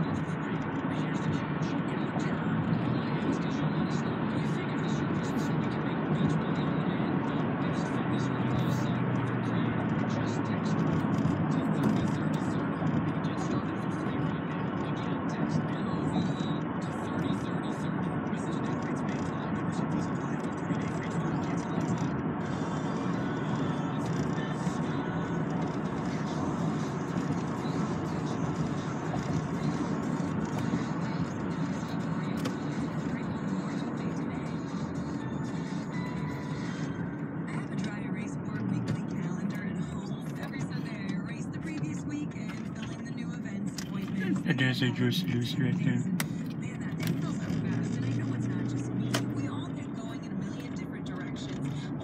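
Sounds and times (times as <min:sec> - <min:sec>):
car road and engine noise: 0:00.0 - 0:52.0
faint radio playing: 0:00.0 - 0:52.0.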